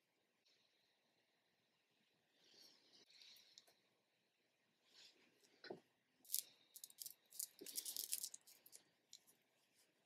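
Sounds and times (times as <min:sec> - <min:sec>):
beads clicking together: 0:06.2 - 0:09.3.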